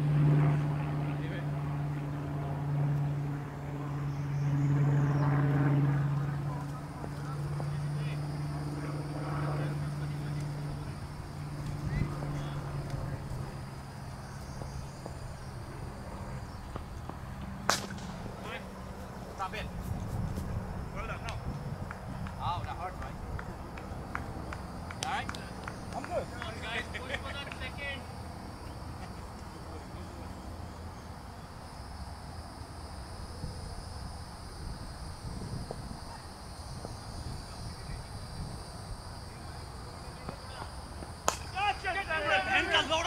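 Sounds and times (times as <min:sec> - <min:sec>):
wind rumble on microphone: 0:10.2 - 0:13.8, 0:14.6 - 0:25.0, 0:33.3 - 0:39.6
distant shouts and calls: 0:20.7 - 0:31.6, 0:39.2 - 0:43.0.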